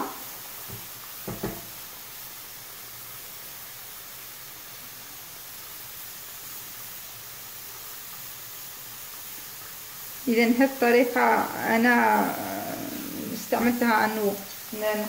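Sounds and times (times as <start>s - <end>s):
rice sizzling in hot oil: 0.0s - 15.0s
light knocks: 0.7s - 1.7s.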